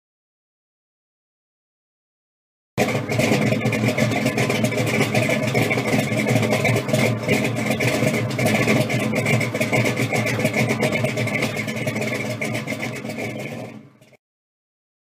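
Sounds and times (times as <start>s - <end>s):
car engine running: 2.8s - 14.2s.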